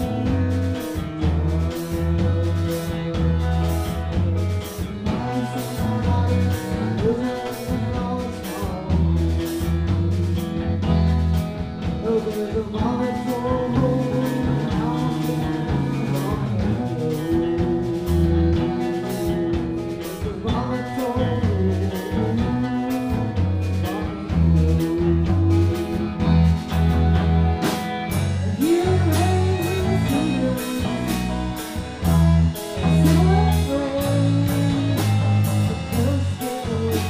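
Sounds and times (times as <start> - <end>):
drum kit beat: 0.0 - 37.0
electric bass: 0.0 - 37.0
electric guitar: 0.0 - 37.0.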